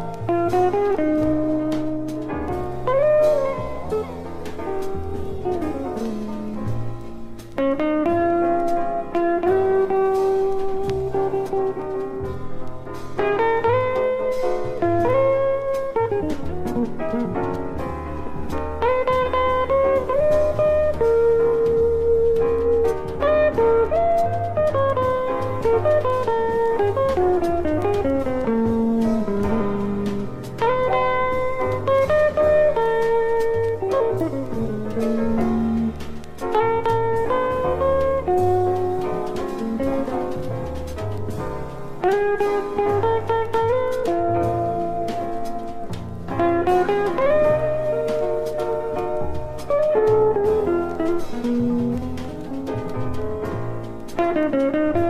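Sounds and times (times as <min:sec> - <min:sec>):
bass line: 0:00.0 - 0:55.0
jazz guitar melody: 0:00.0 - 0:55.0.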